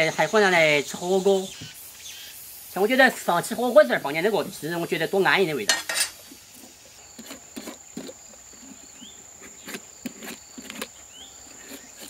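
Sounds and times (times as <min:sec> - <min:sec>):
peeler scraping melon skin: 0:06.1 - 0:12.0.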